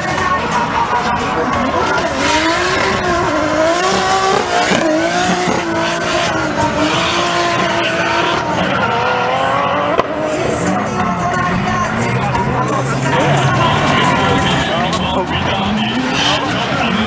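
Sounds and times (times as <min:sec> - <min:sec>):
car engine revving hard: 0:00.8 - 0:17.0.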